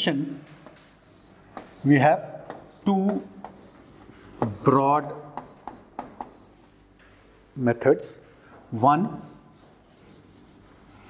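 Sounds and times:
chalk scratching on blackboard: 0.6 - 6.8, 9.0 - 11.0.

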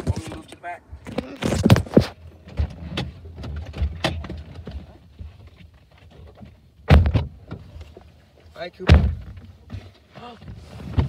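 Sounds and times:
people shifting inside car cabin: 0.0 - 11.0
heavy thump: 8.8 - 9.4.

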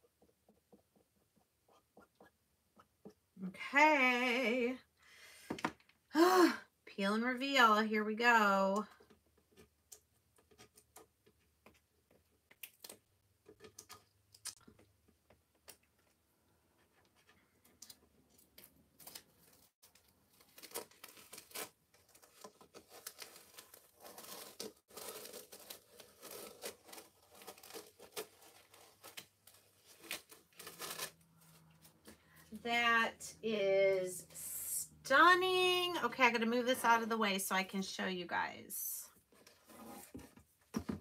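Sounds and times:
stencil peeling crackle: 17.6 - 32.1.

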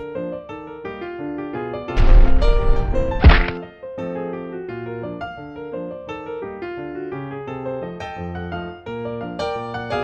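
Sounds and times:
light piano music: 0.0 - 10.0
heavy impact sound effects: 2.0 - 3.6.

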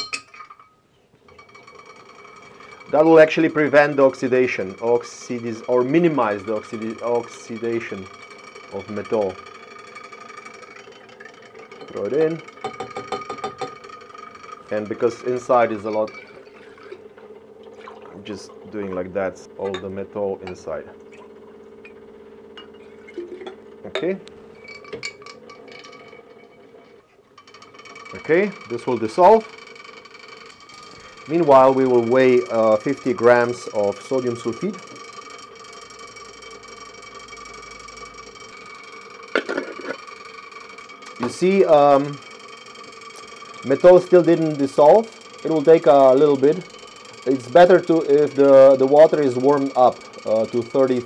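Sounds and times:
glass flask clinking: 0.0 - 8.1, 8.7 - 17.0, 17.7 - 26.2, 38.6 - 40.0
steady low hum: 0.1 - 51.0
stirrer motor whine: 1.2 - 51.0.

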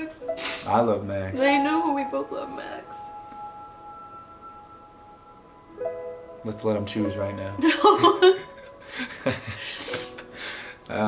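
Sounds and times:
high bell-like held tones: 1.4 - 9.2.

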